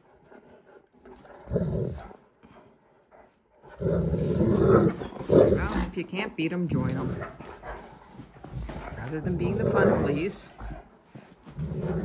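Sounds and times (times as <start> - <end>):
dogs growling in play: 0.0 - 12.0.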